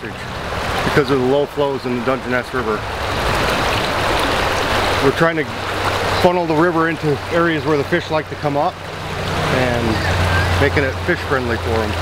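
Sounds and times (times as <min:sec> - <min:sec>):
river rushing over rocks: 0:00.0 - 0:12.0.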